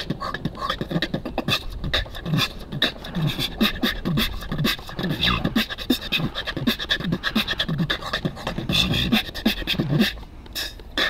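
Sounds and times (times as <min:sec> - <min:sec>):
beatboxing mouth clicks and hits: 0:00.0 - 0:11.0
deep hummed bass notes: 0:05.1 - 0:05.6.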